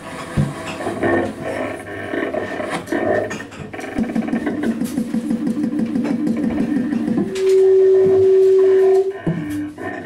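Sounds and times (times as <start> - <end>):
drum and cymbal strikes: 4.0 - 7.5.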